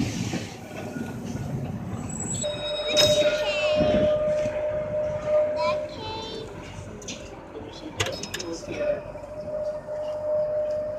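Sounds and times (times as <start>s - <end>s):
tram rumbling on rails: 0.0s - 10.9s
wheels squealing on rails: 0.0s - 10.9s.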